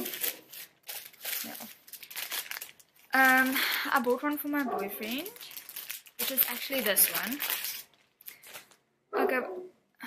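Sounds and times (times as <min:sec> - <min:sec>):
dog barking: 0:04.6 - 0:05.0, 0:09.1 - 0:09.8.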